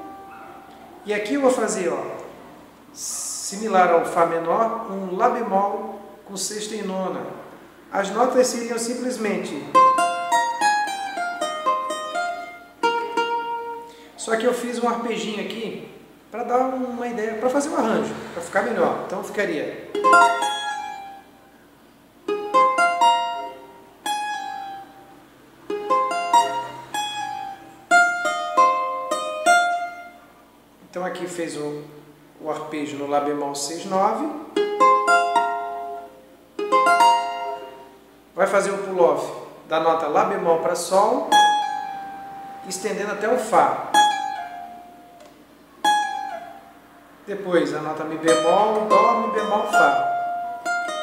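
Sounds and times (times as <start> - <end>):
plucked small guitar arpeggio: 9.4 - 14.0, 19.8 - 21.4, 22.2 - 30.2, 34.3 - 38.1, 41.2 - 42.8, 43.8 - 46.8, 48.2 - 51.0.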